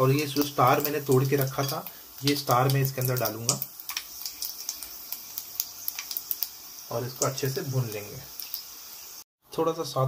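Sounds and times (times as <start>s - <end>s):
spices sizzling and popping in oil: 0.0s - 9.3s.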